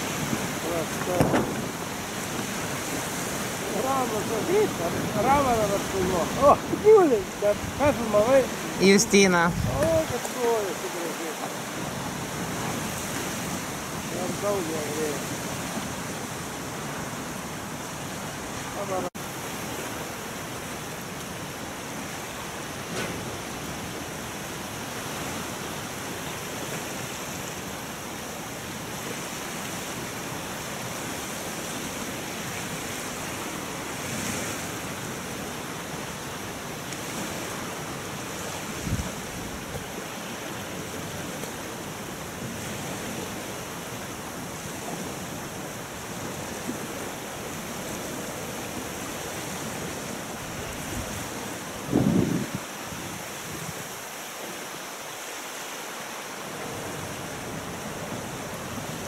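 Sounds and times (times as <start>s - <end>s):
wind on microphone: 0.0s - 10.6s, 37.0s - 40.1s, 47.9s - 54.0s
choppy lake water: 0.0s - 59.0s
low thump: 1.0s - 1.8s.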